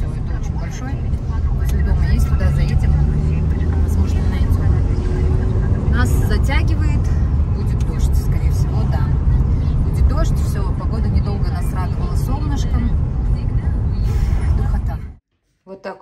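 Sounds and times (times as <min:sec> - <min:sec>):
car engine and road rumble: 0:00.0 - 0:15.2.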